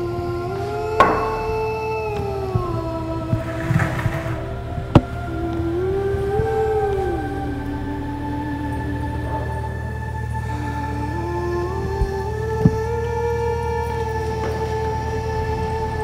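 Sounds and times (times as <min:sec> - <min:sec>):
sustained synthesizer tones: 0:00.0 - 0:16.0
sharp knocks: 0:01.0 - 0:01.7.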